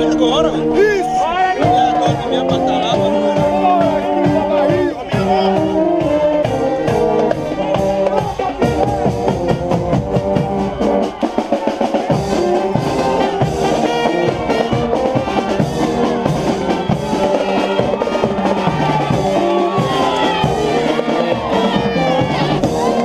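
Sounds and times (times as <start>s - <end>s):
brass instruments playing: 0.0s - 23.0s
snare and bass drums beat: 1.5s - 23.0s.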